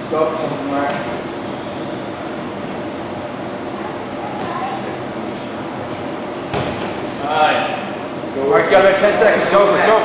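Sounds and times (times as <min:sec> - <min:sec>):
gym hall room noise: 0:00.0 - 0:10.0
bodies thudding on foam mat: 0:06.5 - 0:07.0.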